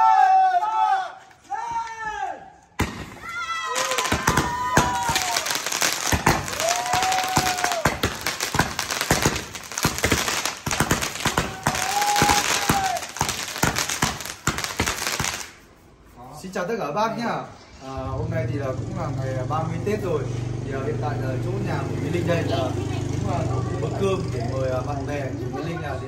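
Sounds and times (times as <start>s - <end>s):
fireworks pops and crackles: 2.8s - 15.8s
rising and falling firework tones: 2.8s - 16.5s.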